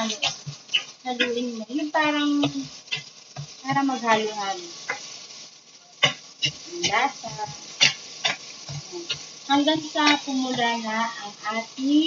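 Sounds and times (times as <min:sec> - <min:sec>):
light sizzle of frying: 0:00.0 - 0:12.0.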